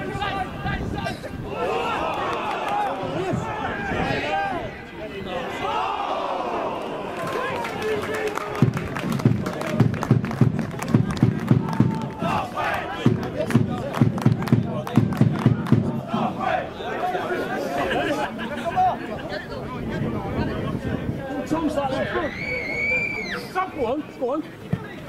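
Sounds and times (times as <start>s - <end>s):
spectators shouting: 0.0s - 8.9s, 11.0s - 18.8s
sharp hand claps: 7.2s - 15.9s.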